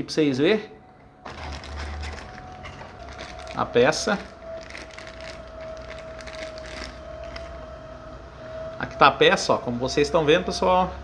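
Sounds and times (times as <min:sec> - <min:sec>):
truck engine whine and rumble: 0:00.0 - 0:11.0
plastic bag rustling: 0:01.2 - 0:07.6.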